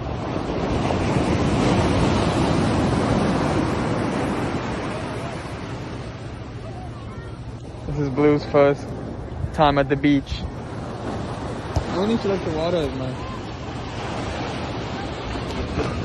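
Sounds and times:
wave breaking on sand: 0.0 - 6.4, 10.6 - 16.0
wind buffeting microphone: 0.0 - 16.0.

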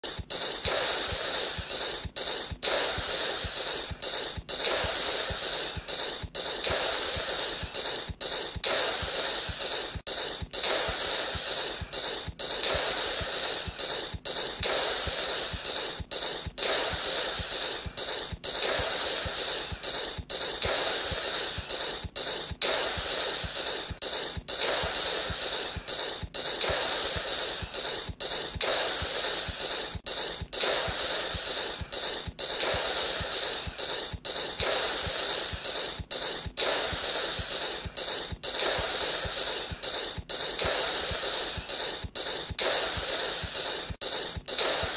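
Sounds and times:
loud static hiss: 0.0 - 44.9.

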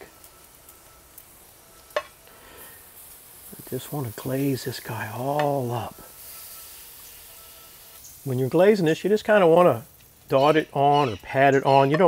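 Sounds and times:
faint sizzle: 0.0 - 12.0.

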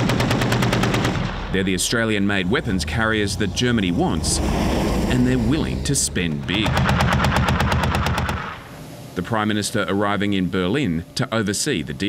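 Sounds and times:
machine gun firing burst: 0.0 - 1.4, 6.6 - 8.7.

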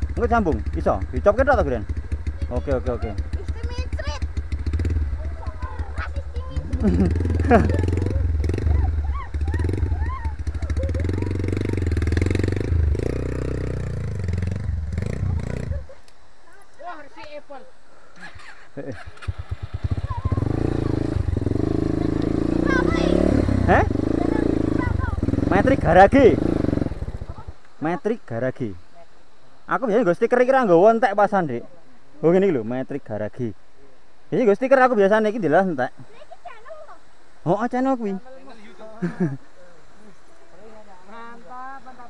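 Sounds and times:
dirt bike engine idling: 0.0 - 16.4, 18.0 - 27.6
voices calling: 0.0 - 42.0.

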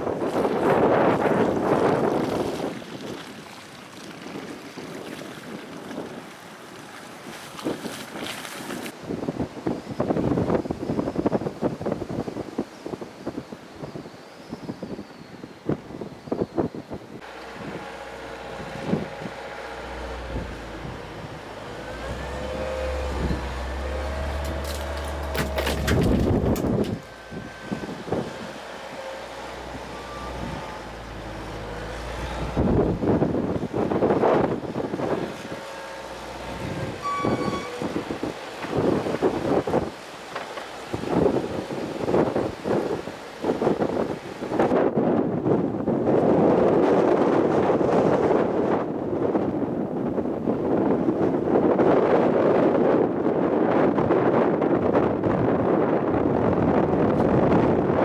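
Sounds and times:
wind noise on microphone: 0.0 - 58.0
outdoor vehicle sounds: 17.1 - 45.0
diesel loader engine running: 17.2 - 44.8.

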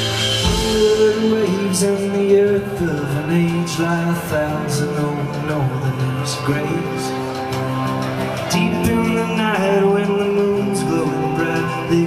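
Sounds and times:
folk-rock band playing: 0.0 - 12.0.

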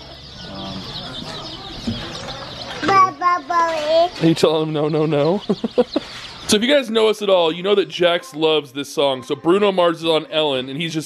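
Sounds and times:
baby chicks peeping: 0.0 - 11.0.

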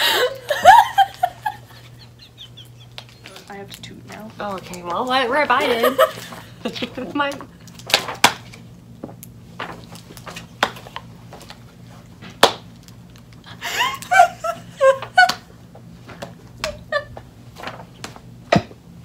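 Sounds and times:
women laughing: 0.0 - 3.5, 5.5 - 7.2, 13.5 - 15.5, 16.6 - 17.2.

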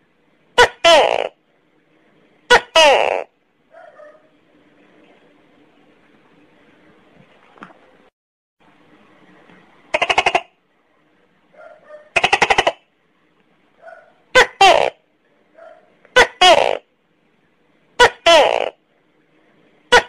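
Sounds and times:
gecko to-kek calls: 9.9 - 10.5.

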